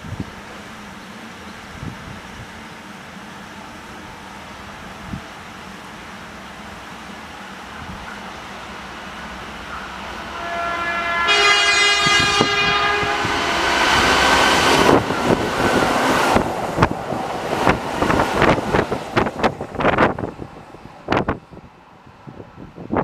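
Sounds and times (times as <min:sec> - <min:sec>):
train warning horn: 0:09.7 - 0:15.4.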